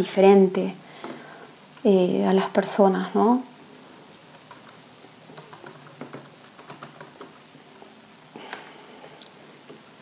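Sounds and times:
typing on a keyboard: 4.4s - 7.4s.

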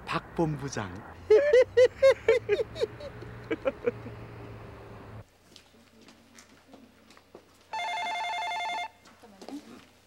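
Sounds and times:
desk telephone two-tone trill: 7.8s - 8.9s.

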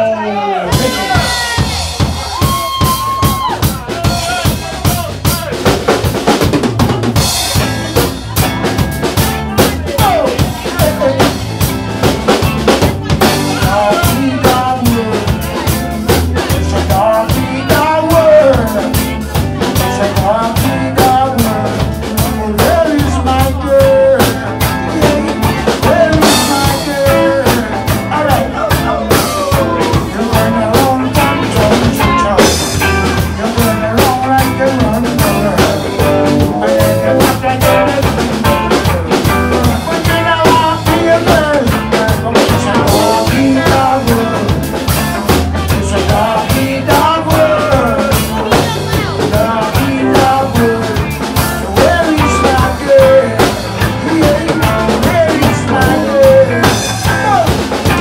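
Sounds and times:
bass guitar: 0.0s - 58.0s
electric guitars: 0.0s - 58.0s
drum kit steady beat: 0.7s - 58.0s.

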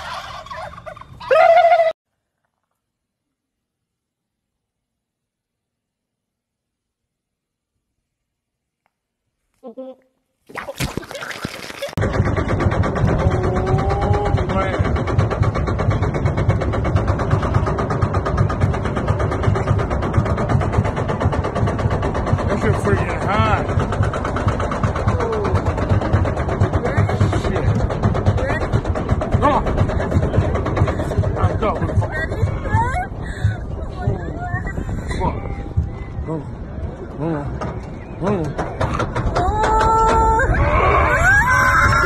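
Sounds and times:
wind rumbling on microphone: 11.4s - 42.0s.

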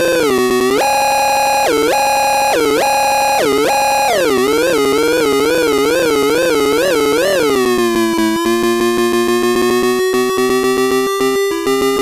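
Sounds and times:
buzzy electronic tone: 0.0s - 8.2s.

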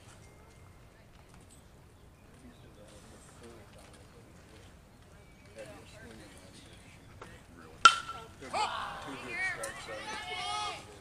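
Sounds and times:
metal bat hitting ball: 7.8s - 8.3s
spectators shouting and cheering: 8.4s - 11.0s.

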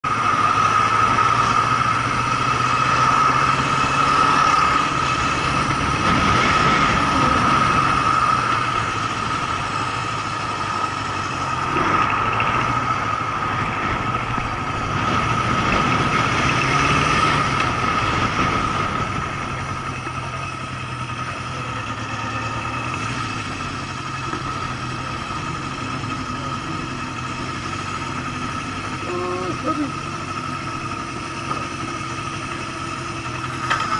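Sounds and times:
motorcycle engine: 0.0s - 33.9s
steady high whine: 0.0s - 33.9s.

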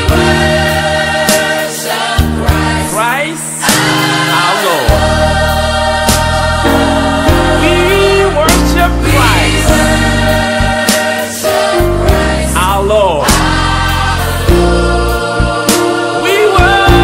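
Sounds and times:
choir singing gospel music: 0.0s - 17.0s
sustained bass notes: 5.0s - 10.9s.

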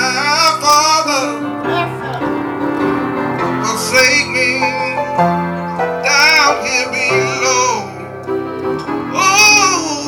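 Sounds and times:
man singing into a microphone: 0.0s - 1.5s, 3.6s - 5.2s, 6.0s - 8.2s, 9.1s - 10.0s
piano chords: 0.0s - 10.0s.

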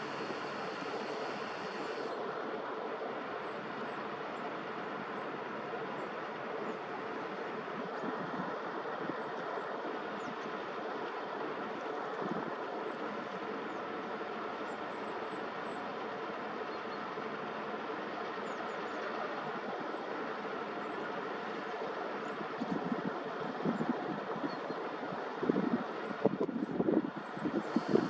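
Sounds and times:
heavy construction machinery: 0.0s - 2.1s.

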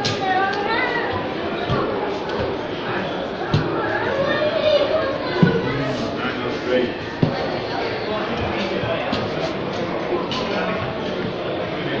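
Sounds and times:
children's voices: 0.0s - 10.8s
crowd chatter in hall: 0.0s - 12.0s.

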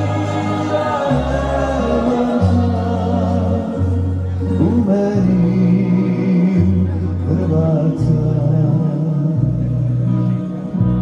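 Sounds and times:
choir singing: 0.0s - 5.3s.

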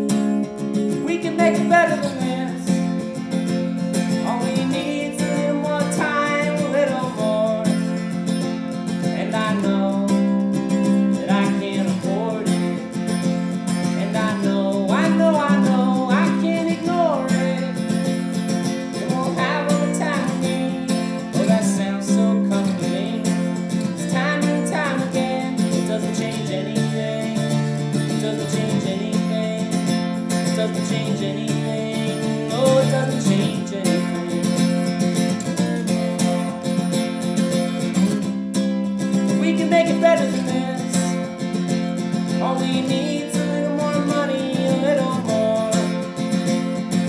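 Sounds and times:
acoustic guitar: 0.0s - 47.0s.

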